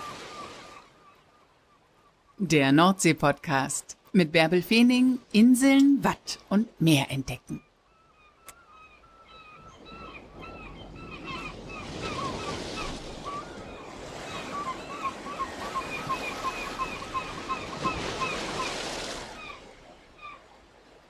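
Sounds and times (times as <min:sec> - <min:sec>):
waves breaking on a beach: 0:00.0 - 0:02.3, 0:09.8 - 0:21.0
birds calling: 0:07.5 - 0:20.5.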